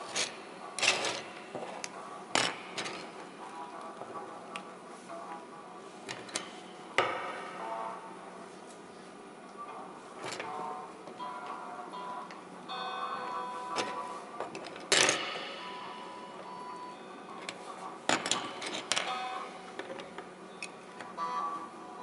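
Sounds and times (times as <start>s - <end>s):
hard bars knocking and clinking: 2.3s - 3.2s, 13.8s - 15.9s, 17.4s - 20.8s.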